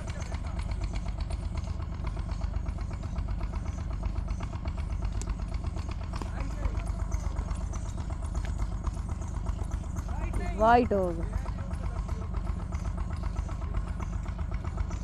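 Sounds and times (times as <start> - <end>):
small engine idling: 0.0 - 15.0.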